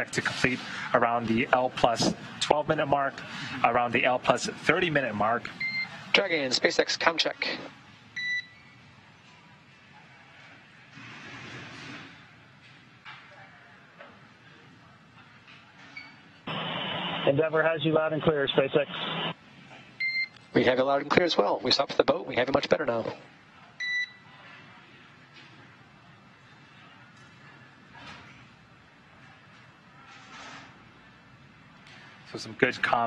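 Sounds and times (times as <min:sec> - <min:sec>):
faint radio hiss: 0:08.9 - 0:33.0.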